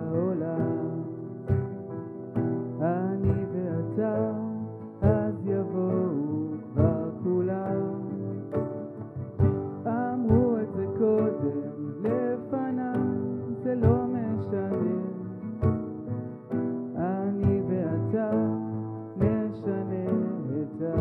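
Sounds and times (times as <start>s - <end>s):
acoustic guitar: 0.0s - 21.0s
cajon striking: 0.0s - 21.0s
grand piano chords: 0.0s - 21.0s.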